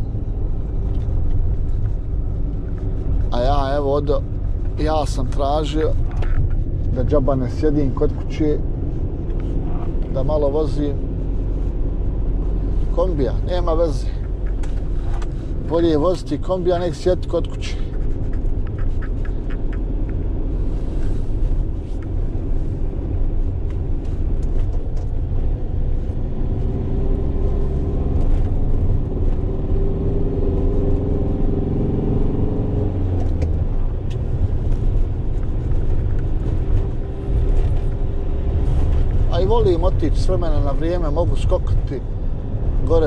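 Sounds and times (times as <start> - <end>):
van engine and road rumble: 0.0 - 43.0.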